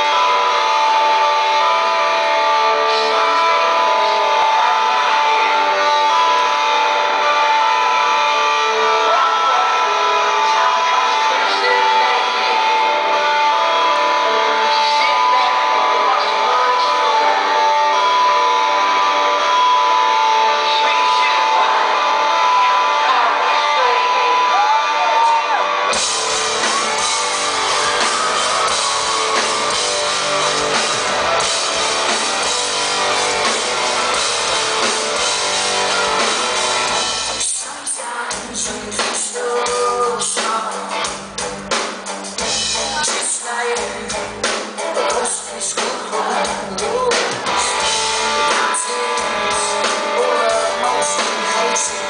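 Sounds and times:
electric guitar ringing notes: 0:00.0 - 0:37.6
crowd cheering: 0:00.0 - 0:41.1, 0:41.7 - 0:52.0
live rock band playing: 0:00.0 - 0:52.0.

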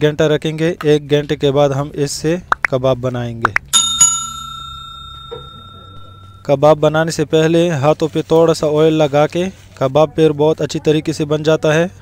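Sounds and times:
notification bell ding: 0:03.7 - 0:06.6.

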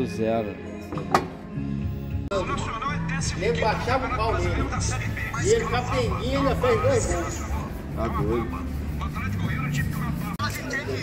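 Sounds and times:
men talking: 0:02.3 - 0:11.0.

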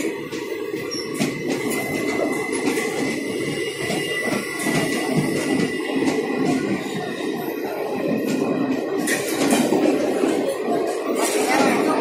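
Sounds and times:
train coaches rolling past: 0:00.0 - 0:12.0.

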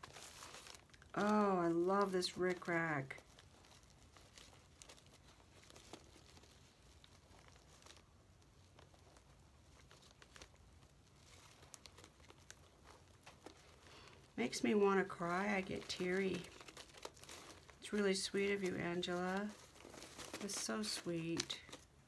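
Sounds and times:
paper and plastic rustling: 0:00.0 - 0:22.0.

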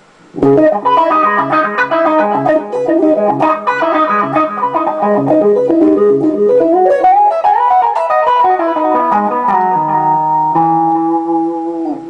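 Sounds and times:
clean electric guitar with wah: 0:00.3 - 0:12.0.

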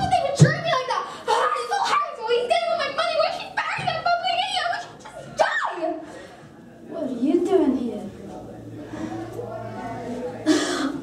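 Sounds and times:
low murmur of voice: 0:05.9 - 0:11.0.

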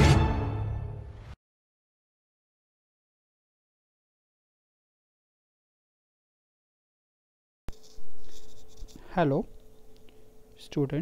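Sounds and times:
loud scratchy rustling: 0:07.7 - 0:09.8
faint steady hum: 0:07.7 - 0:11.0.

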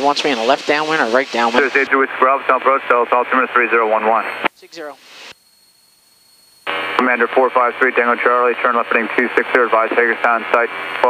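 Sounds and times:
radio speech: 0:00.0 - 0:05.0, 0:07.0 - 0:11.0.

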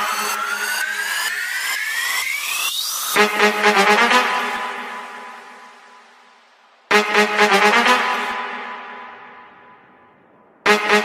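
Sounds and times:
electronic riser whoosh: 0:00.0 - 0:03.2.

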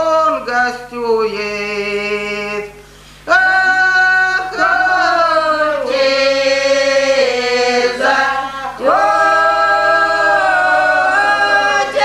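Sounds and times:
group singing unaccompanied: 0:03.3 - 0:12.0.

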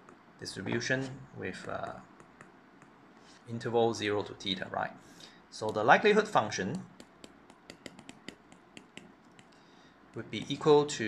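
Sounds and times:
stylus tapping on glass screen: 0:06.9 - 0:10.6.

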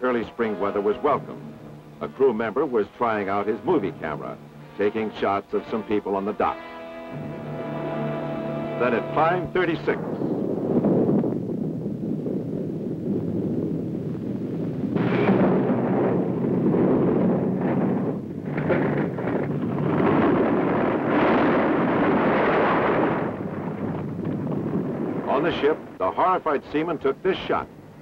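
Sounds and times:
deep earthquake rumbling roar: 0:07.1 - 0:26.0.

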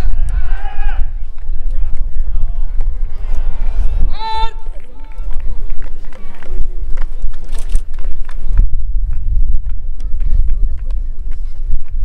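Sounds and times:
faint crowd chatter: 0:00.0 - 0:12.0
heavy low rumble: 0:00.0 - 0:12.0.

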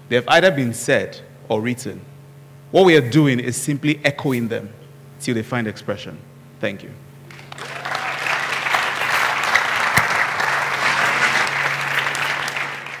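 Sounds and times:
audience applauding: 0:07.3 - 0:13.0.

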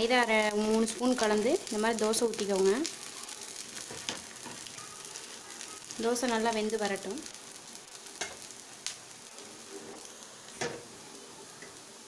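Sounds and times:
batter sizzling on hot griddle: 0:00.0 - 0:12.0.

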